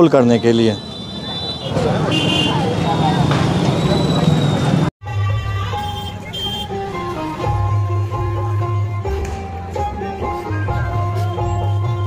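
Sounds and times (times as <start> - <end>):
passing traffic: 0.0 - 12.0
crowd voices: 0.3 - 4.9
music: 5.0 - 12.0.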